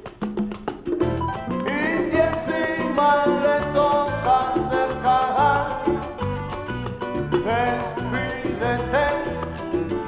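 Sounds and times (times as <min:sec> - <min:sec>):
instrumental salsa music: 0:00.0 - 0:10.0.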